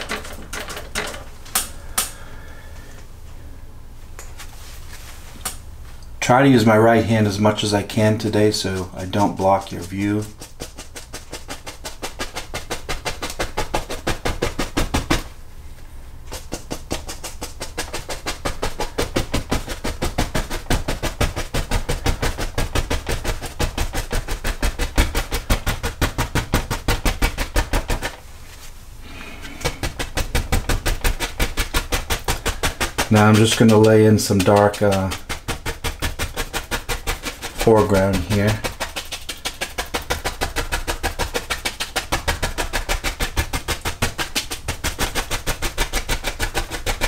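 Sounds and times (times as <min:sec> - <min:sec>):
brush tapping on canvas: 0:06.6 - 0:15.3, 0:16.3 - 0:47.0.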